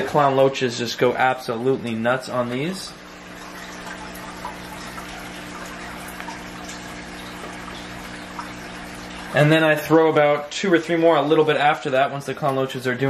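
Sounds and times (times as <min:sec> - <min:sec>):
aquarium water bubbling and trickling: 0:00.0 - 0:13.0
low steady equipment hum: 0:00.0 - 0:13.0.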